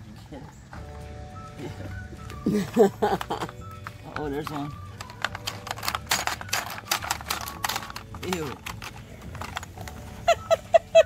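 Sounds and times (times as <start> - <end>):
plastic game levers clicking: 4.2 - 10.0.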